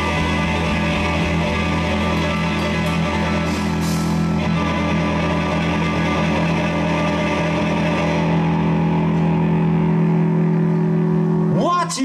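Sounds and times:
blues band sustained chord: 0.0s - 12.0s.

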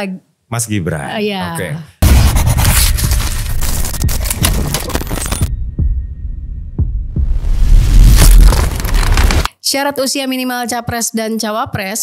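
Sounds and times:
crackling glitch noise: 2.0s - 5.5s, 7.6s - 9.5s
deep falling booms: 5.5s - 9.4s.

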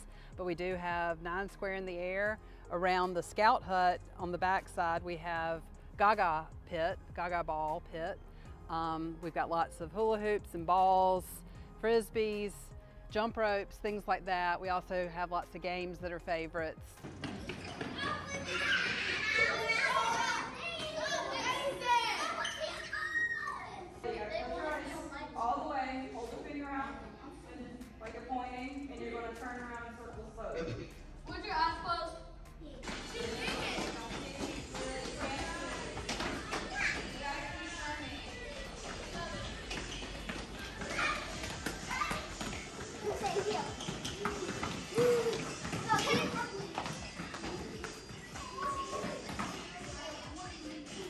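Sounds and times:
children shouting and chattering: 17.3s - 26.4s, 31.3s - 51.0s.

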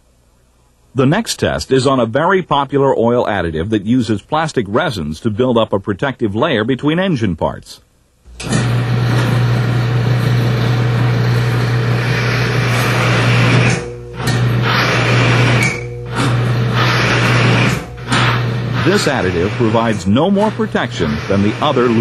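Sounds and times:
bearing grinding friction noise: 8.3s - 22.0s
electric motor humming: 8.3s - 22.0s.

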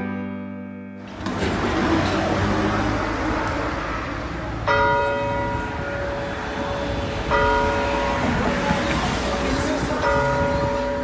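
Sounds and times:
church bell ringing: 3.0s - 11.0s.

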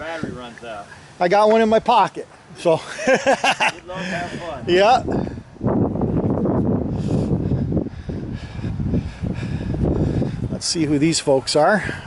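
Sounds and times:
wind buffeting microphone: 3.4s - 12.0s.

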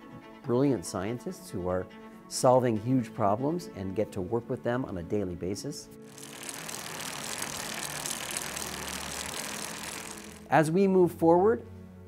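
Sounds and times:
bicycle tyres rushing on pavement: 6.1s - 10.5s
low hum: 6.1s - 10.5s.

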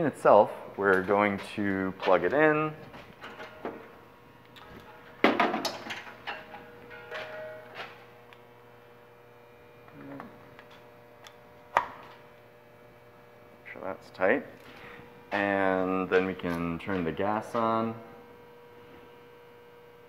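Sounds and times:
faint steady hum: 0.0s - 20.0s.

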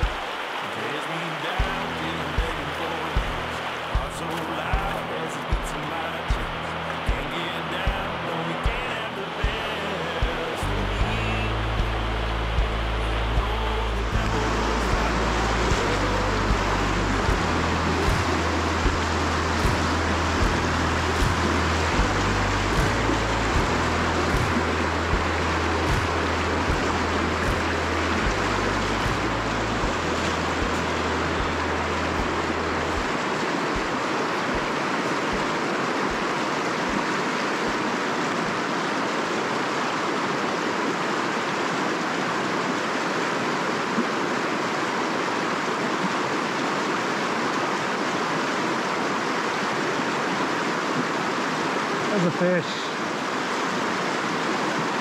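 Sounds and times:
river rushing over rocks: 0.0s - 55.0s
low rumble: 9.4s - 34.7s.

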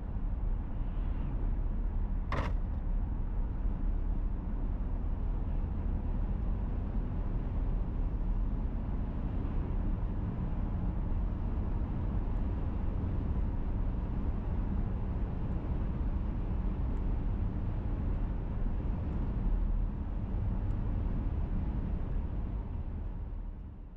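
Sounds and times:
tyre and engine rumble in car: 1.0s - 23.5s.

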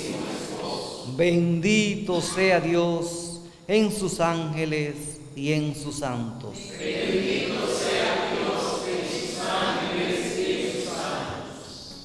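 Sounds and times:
choir singing chant: 0.0s - 1.1s, 6.6s - 12.0s.

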